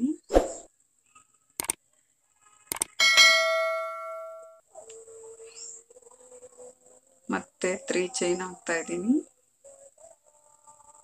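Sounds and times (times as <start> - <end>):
bell chime: 3.0 - 4.6.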